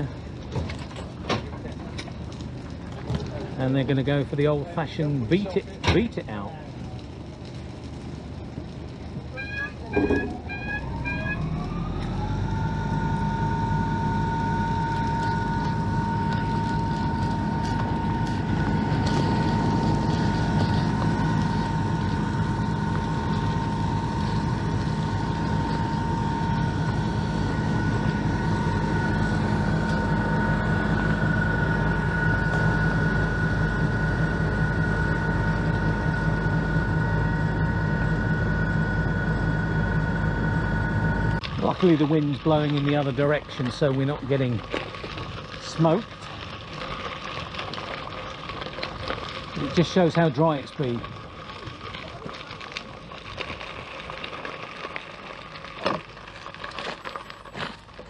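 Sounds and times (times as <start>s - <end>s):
two-note whine: 9.2s - 41.6s
heavy engine revving: 9.4s - 41.4s.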